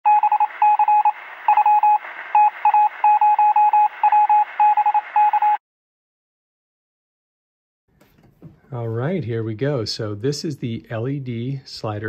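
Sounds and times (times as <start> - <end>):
morse code beeping: 0.1 - 5.6
radio static hiss: 0.5 - 3.2.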